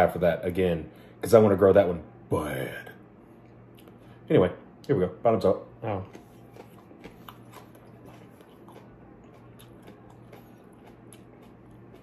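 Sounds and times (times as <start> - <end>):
steady low hum: 0.0 - 12.0
faint chewing: 3.4 - 4.2, 5.8 - 12.0.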